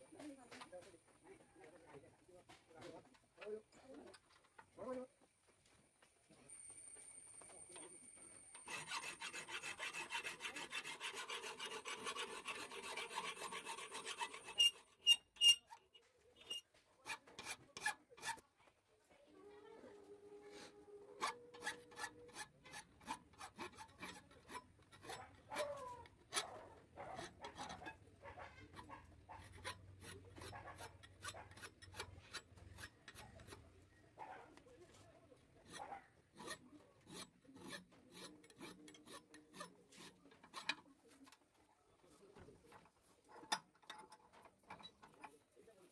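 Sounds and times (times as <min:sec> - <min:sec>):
file rasping on steel: 0:07.7 - 0:18.4, 0:20.5 - 0:45.6.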